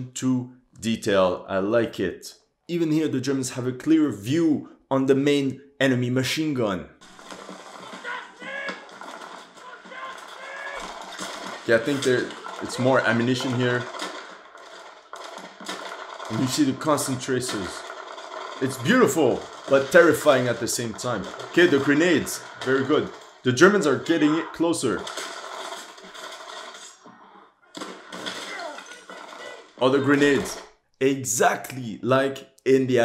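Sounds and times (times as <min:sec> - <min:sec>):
distant gunshots: 0:07.0 - 0:27.0, 0:27.7 - 0:30.8
battle noise: 0:07.0 - 0:31.6
soldier shouting: 0:07.8 - 0:08.9, 0:09.6 - 0:10.9, 0:28.5 - 0:30.6.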